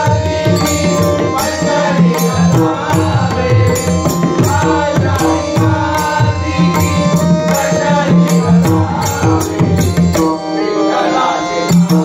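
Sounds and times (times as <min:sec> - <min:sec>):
harmonium tones: 0:00.0 - 0:12.0
man singing: 0:00.0 - 0:12.0.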